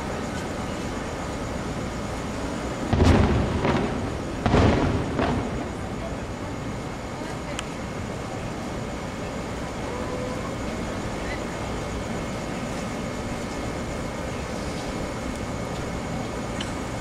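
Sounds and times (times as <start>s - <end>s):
steady background hum: 0.0s - 17.0s
distant fireworks booming: 0.1s - 7.3s.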